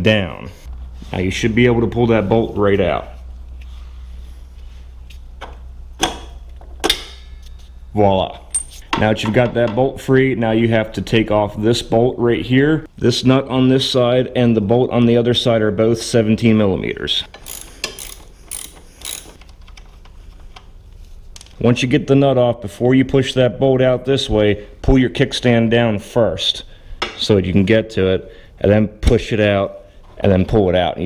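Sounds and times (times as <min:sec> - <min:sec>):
metal hand tools clicking: 0:17.3 - 0:19.5.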